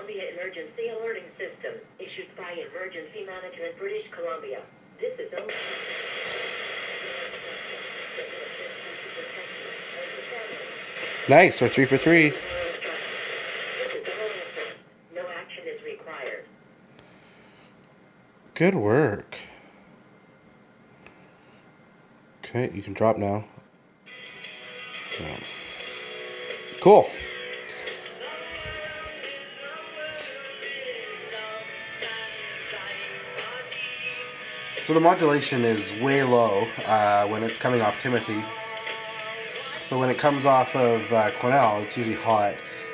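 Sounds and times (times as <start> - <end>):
radio static hiss: 0.0 - 17.7, 18.6 - 19.8, 22.4 - 42.9.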